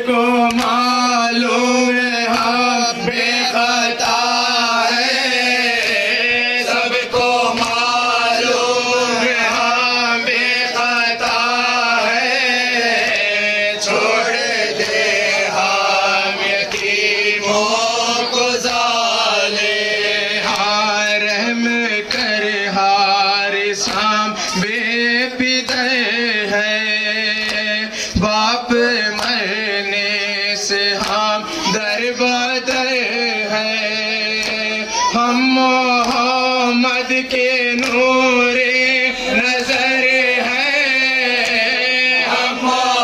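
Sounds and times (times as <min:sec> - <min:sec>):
men chanting a lament: 0:00.0 - 0:43.0
reciter on a microphone: 0:00.0 - 0:43.0.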